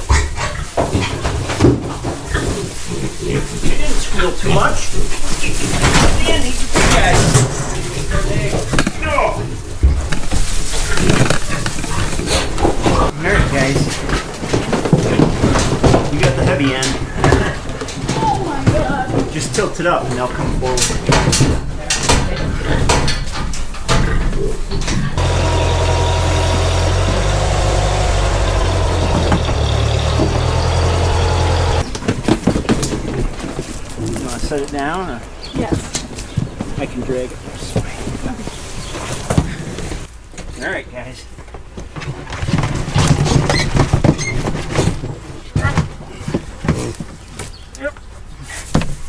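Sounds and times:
piglets scrambling: 0.0 - 16.1
knocks and clatter: 9.8 - 19.7, 20.3 - 33.6
tractor engine running: 25.2 - 31.9.

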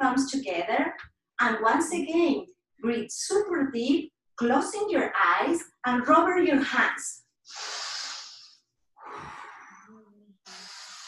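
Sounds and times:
person breathing deeply: 7.5 - 11.0.

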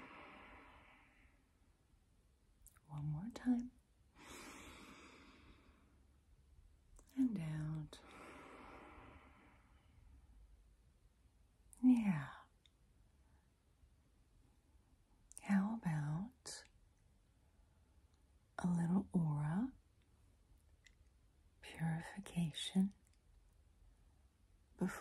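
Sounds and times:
woman whispering: 2.7 - 3.8, 7.0 - 8.2, 11.8 - 12.6, 15.3 - 16.7, 18.6 - 19.8, 21.6 - 23.0, 24.8 - 25.0.

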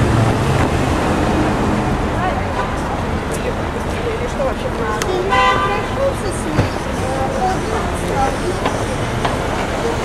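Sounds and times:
city street traffic: 0.0 - 10.0
indistinct voices: 1.8 - 10.0
car horn honking: 5.2 - 6.1.

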